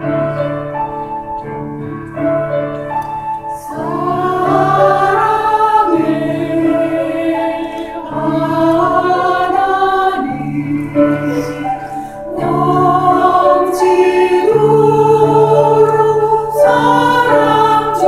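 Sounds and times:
piano accompaniment: 0:00.0 - 0:18.0
choir singing a hymn: 0:03.5 - 0:18.0.

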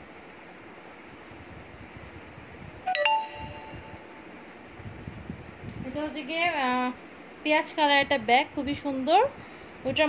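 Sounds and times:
metallic chime ringing: 0:02.9 - 0:04.1.

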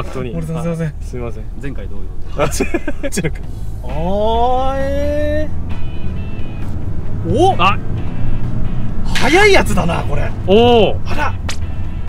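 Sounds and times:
car engine drone and road noise: 0:00.0 - 0:12.0.

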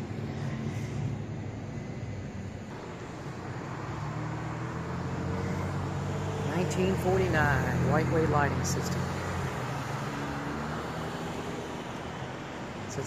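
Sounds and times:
street traffic engine hum: 0:00.0 - 0:13.0.

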